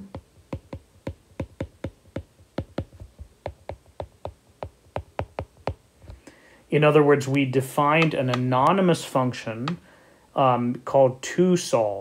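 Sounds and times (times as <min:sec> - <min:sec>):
stylus tapping on glass screen: 0:00.0 - 0:06.2.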